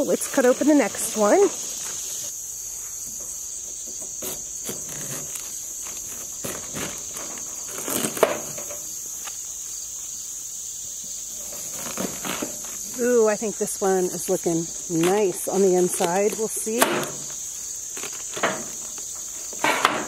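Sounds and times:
high-pitched insect chorus: 0:00.0 - 0:20.0.

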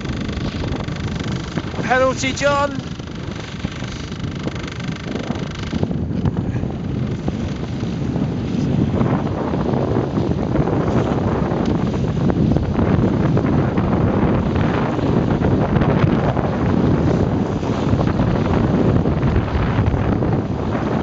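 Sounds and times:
outboard motor whine: 0:00.0 - 0:21.0
water rushing along boat hull: 0:00.0 - 0:21.0
wind buffeting microphone: 0:00.0 - 0:21.0.

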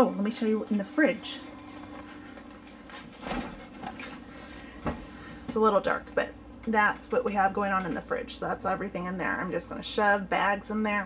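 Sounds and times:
refrigerator door opening: 0:03.2 - 0:04.2.

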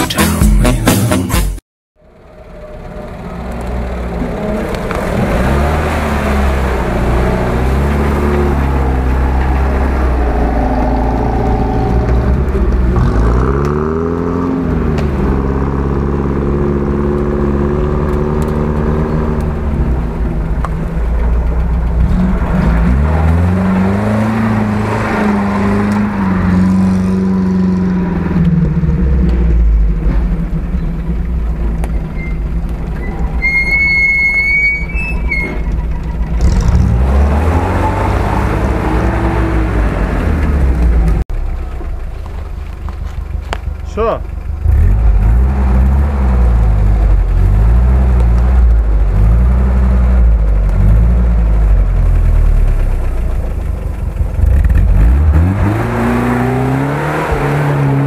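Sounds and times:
off-road vehicle engine revving: 0:03.0 - 0:41.6, 0:42.7 - 0:58.0.

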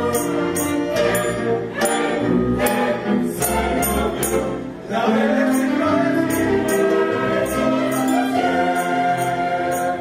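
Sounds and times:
choir singing with strings: 0:00.0 - 0:10.0.

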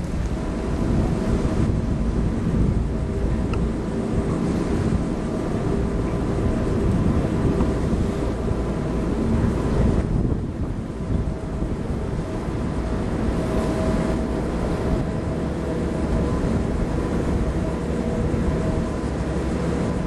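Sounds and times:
boat engine rumbling: 0:00.0 - 0:20.0
wind buffeting microphone: 0:00.0 - 0:20.0.

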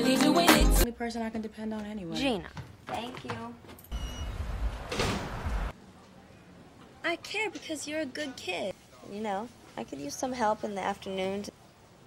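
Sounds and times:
city street rumble: 0:03.1 - 0:08.0.

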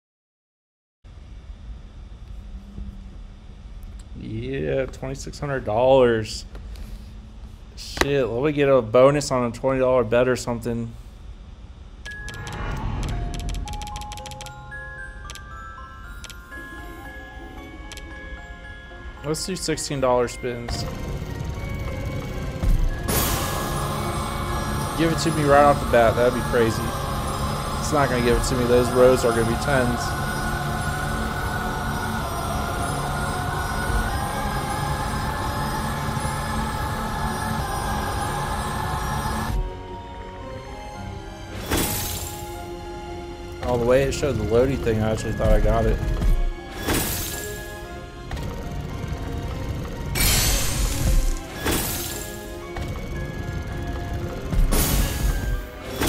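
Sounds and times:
game background music: 0:11.8 - 0:56.0
quick clicks: 0:12.1 - 0:14.5.

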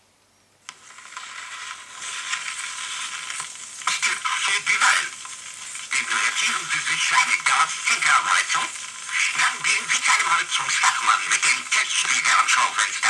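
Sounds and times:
stylus click on record: 0:00.6 - 0:13.0
vinyl crackling surface noise: 0:00.6 - 0:13.0.

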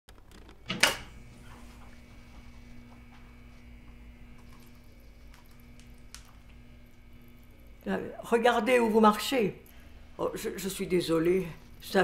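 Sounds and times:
faint steady hum: 0:00.4 - 0:12.0.

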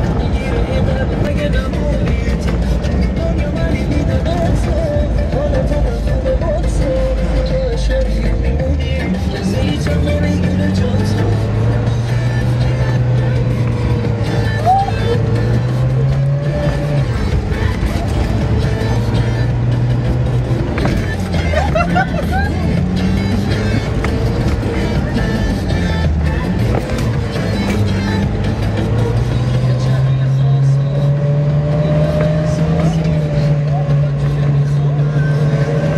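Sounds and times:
car engine running: 0:00.0 - 0:35.9
music playing: 0:00.0 - 0:35.9.

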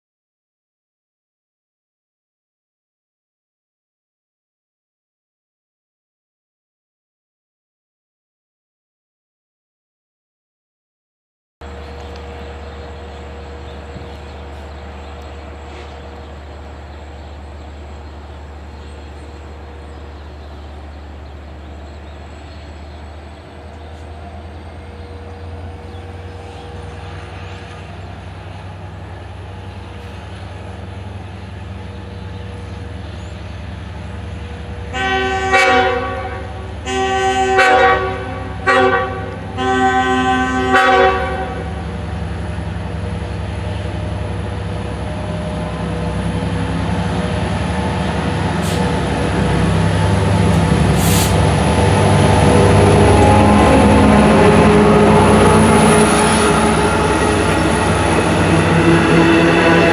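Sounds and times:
diesel locomotive engine rumble: 0:11.6 - 0:59.9
locomotive horn blasts: 0:34.9 - 0:41.8, 0:52.3 - 0:59.9.

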